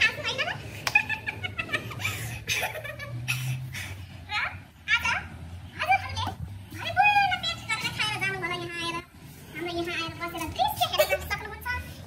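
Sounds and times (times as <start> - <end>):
women giggling and laughing: 0.7 - 4.0
women talking: 9.6 - 12.0.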